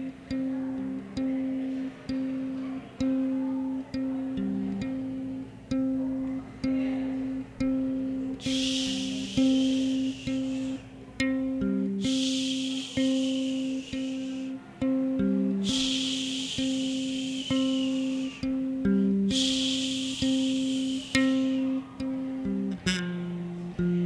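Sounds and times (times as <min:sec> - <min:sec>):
electric bass guitar notes: 0:00.0 - 0:24.0.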